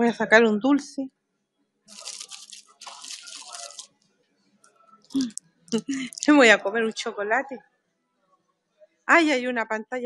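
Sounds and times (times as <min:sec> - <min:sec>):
sweet wrapper crinkling: 0:01.9 - 0:03.9, 0:05.1 - 0:06.4.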